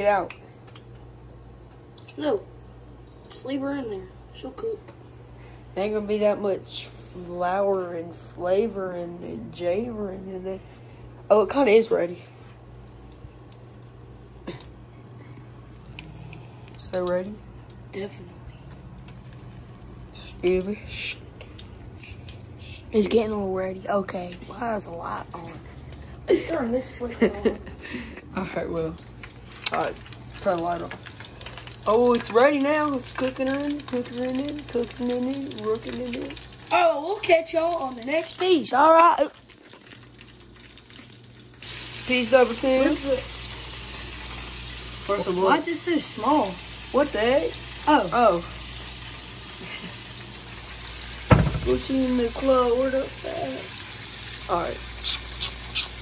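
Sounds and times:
low electrical hum: 0.0s - 56.0s
oil sizzling and bubbling in fryer: 0.0s - 56.0s.

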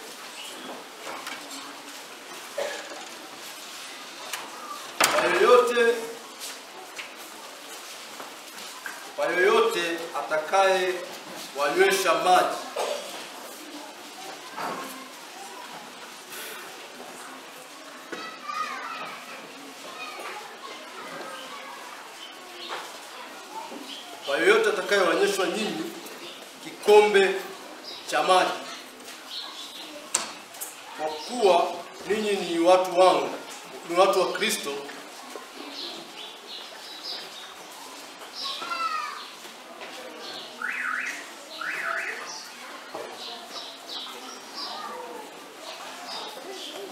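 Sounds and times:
murmur of children's voices: 0.0s - 46.9s
high child's voice: 17.9s - 22.0s, 38.4s - 39.3s.

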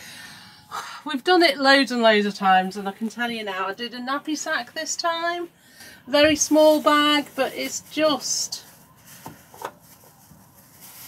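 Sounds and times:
faint rustling and handling noise: 2.0s - 11.0s.

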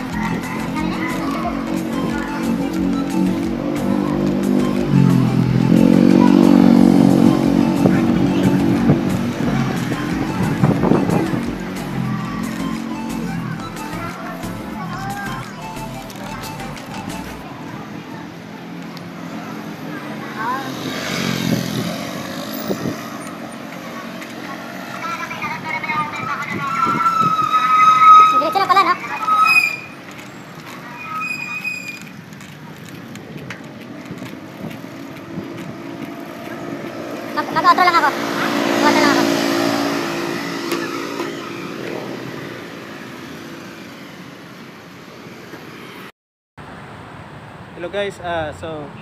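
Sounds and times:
people's voices: 0.0s - 43.4s
motor traffic passing: 0.0s - 49.0s
road and wind noise: 0.0s - 49.0s.

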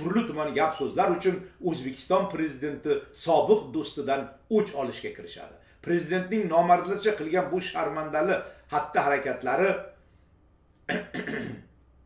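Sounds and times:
man coughing: 10.9s - 11.8s.

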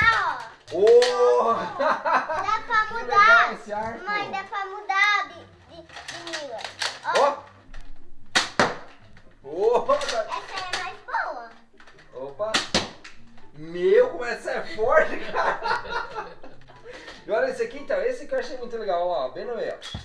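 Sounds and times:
children talking and exclaiming: 0.0s - 7.5s, 10.0s - 11.7s
toy dart blasters snapping: 6.0s - 7.3s, 8.3s - 9.0s, 12.5s - 13.2s.

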